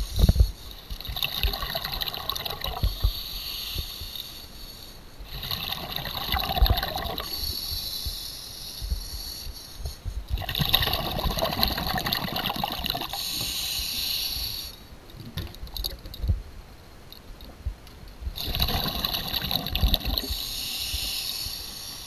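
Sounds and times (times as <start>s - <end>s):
diver breathing through regulator: 0.0s - 1.0s, 2.6s - 10.5s, 12.9s - 14.9s, 18.4s - 22.0s
bubbles rushing: 1.0s - 2.9s, 5.4s - 7.3s, 10.4s - 13.2s, 18.4s - 20.3s.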